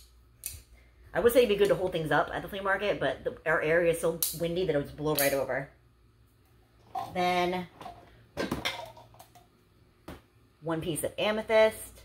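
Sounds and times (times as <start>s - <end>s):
household items rustling clatter: 6.8s - 9.4s.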